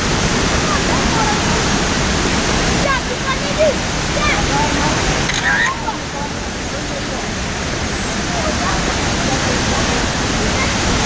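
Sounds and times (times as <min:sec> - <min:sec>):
river rushing over rapids: 0:00.0 - 0:11.0.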